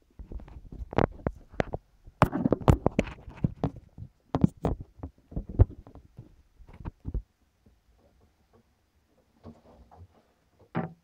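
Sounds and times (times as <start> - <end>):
device handling knocks and scrapes: 0.2 - 7.2.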